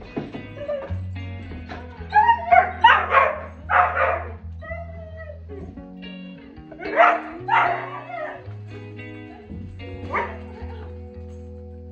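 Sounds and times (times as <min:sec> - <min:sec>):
background music: 0:00.0 - 0:11.9
dogs whining and yipping: 0:00.3 - 0:05.7, 0:06.8 - 0:08.5, 0:10.1 - 0:10.5.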